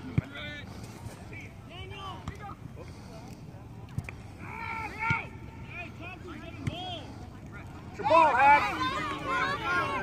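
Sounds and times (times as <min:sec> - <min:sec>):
distant shouts and calls: 0:04.2 - 0:10.0.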